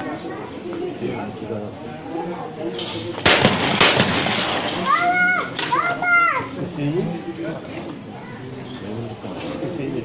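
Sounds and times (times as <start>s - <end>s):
shotgun shots: 3.2s - 5.6s.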